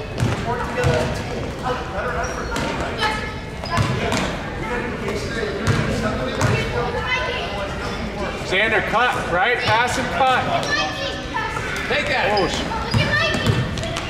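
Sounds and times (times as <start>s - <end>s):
voices in a large hall: 0.0s - 14.0s
basketball bouncing on gym floor: 0.2s - 1.3s, 3.6s - 4.3s, 5.6s - 6.7s, 12.5s - 14.0s.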